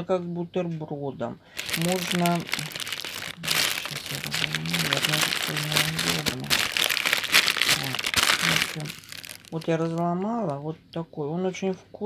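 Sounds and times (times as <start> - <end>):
plastic packet crinkling: 1.5 - 10.6
bread crust crackling: 1.6 - 10.5.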